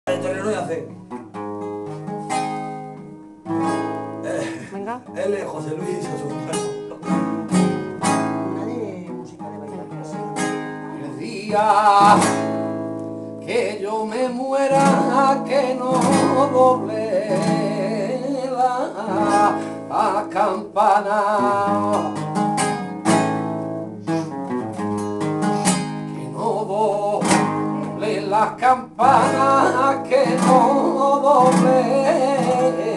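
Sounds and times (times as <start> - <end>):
acoustic guitar chords strummed: 0.1 - 32.9.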